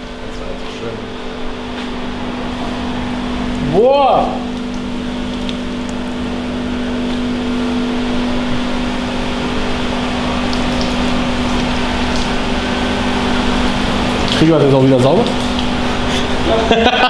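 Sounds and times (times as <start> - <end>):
steady mechanical hum: 0.0 - 17.0
water pouring onto car bonnet: 0.4 - 17.0.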